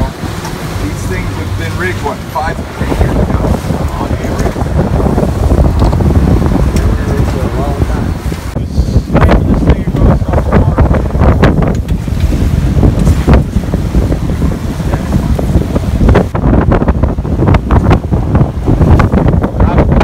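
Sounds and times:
boat motors rumbling: 0.0s - 20.0s
wake churning: 0.0s - 20.0s
wind buffeting microphone: 0.0s - 20.0s.

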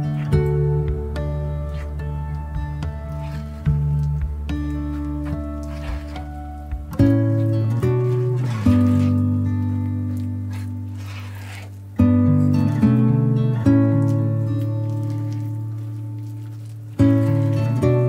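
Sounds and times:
plucked instrumental music: 0.0s - 18.0s.

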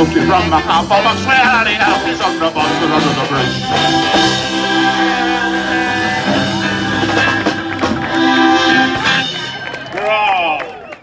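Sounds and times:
accordion: 0.0s - 9.9s
saxophone: 0.0s - 10.0s
guitars: 0.0s - 10.3s
drum kit: 0.0s - 10.4s.

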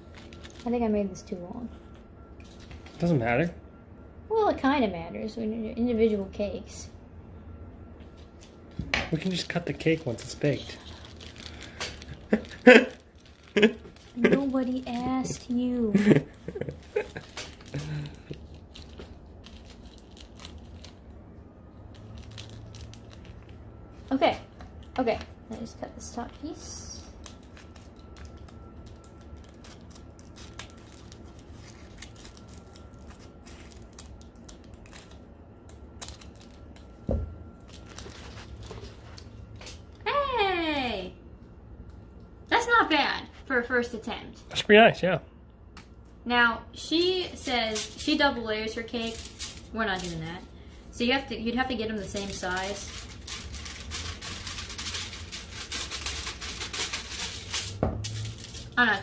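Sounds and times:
foil crinkling: 0.0s - 0.9s, 9.2s - 21.2s, 21.8s - 24.1s, 24.7s - 39.4s, 47.4s - 59.0s
scissors snipping foil: 26.9s - 36.9s, 47.6s - 50.4s, 52.0s - 59.0s.

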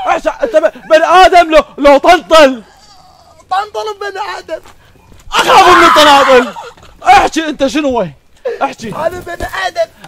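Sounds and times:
man's drawn-out vocal cry: 5.3s - 7.3s.

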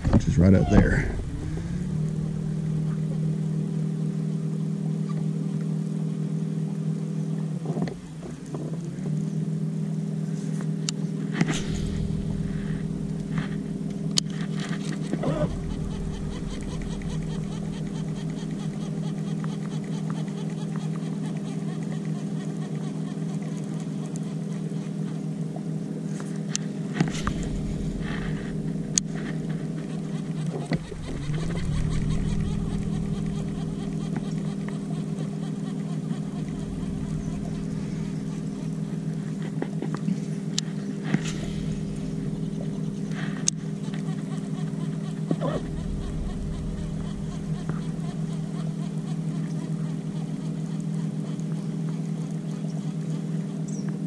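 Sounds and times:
electric trolling motor humming: 0.0s - 24.8s, 26.9s - 53.6s.

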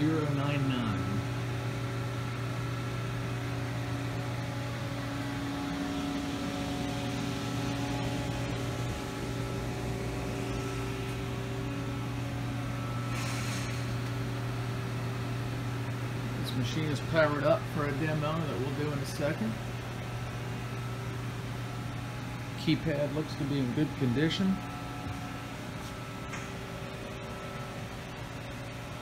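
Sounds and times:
milling machine humming: 0.0s - 29.0s.

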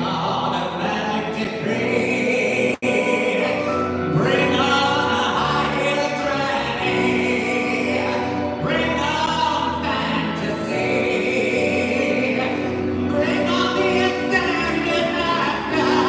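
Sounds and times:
keyboard: 0.0s - 16.0s
person singing: 0.0s - 16.0s.

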